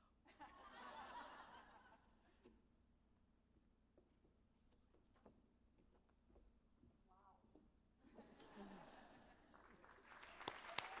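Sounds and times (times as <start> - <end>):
audience applause: 9.5 - 11.0
sharp individual claps: 10.3 - 11.0.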